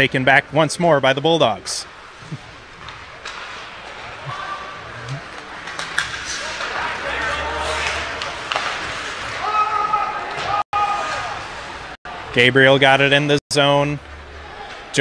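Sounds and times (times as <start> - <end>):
hockey sticks and puck clacking: 2.4 - 11.5
people shouting: 9.3 - 11.4.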